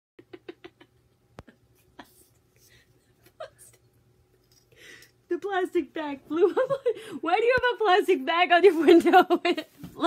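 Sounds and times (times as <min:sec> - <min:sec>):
woman laughing quietly: 0:00.2 - 0:04.0, 0:06.3 - 0:07.2.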